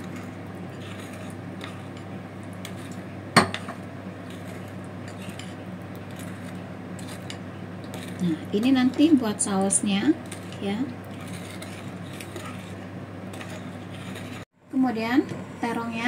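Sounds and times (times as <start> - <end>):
spoon stirring in porcelain bowl: 0.0 - 14.5
steady low hum: 0.0 - 16.0.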